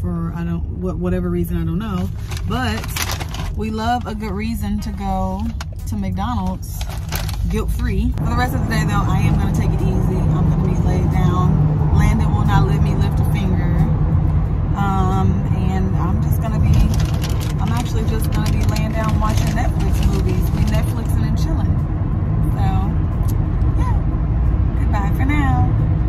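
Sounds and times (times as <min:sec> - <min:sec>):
woman talking: 0:00.0 - 0:13.9, 0:14.8 - 0:21.8, 0:22.5 - 0:23.0, 0:23.7 - 0:24.1, 0:24.8 - 0:25.8
low rumble inside car cabin: 0:00.0 - 0:26.0.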